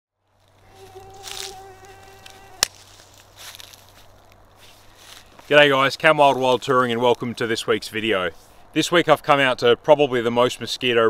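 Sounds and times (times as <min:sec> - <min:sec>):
mosquito whine: 0:00.6 - 0:03.2.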